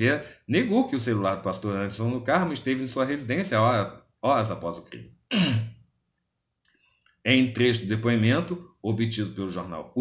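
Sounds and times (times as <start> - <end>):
man clearing throat: 5.3 - 5.8.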